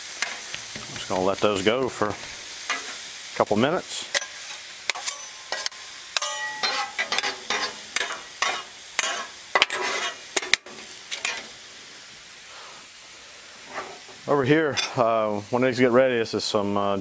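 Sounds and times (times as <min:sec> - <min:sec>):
food sizzling: 0:00.0 - 0:17.0
metal spatulas scraping griddle: 0:02.7 - 0:03.0, 0:04.1 - 0:11.6, 0:13.6 - 0:14.2.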